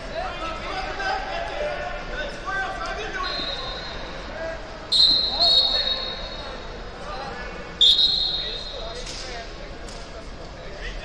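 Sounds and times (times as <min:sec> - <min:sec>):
background chatter: 0:00.0 - 0:11.0
referee whistle blasts: 0:03.2 - 0:04.2, 0:04.9 - 0:06.5, 0:07.8 - 0:08.9.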